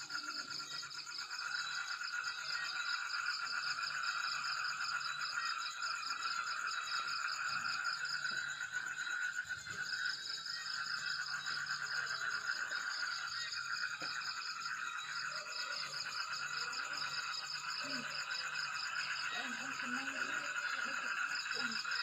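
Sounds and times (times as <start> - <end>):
frogs calling: 0.0 - 22.0
insects trilling: 0.0 - 22.0.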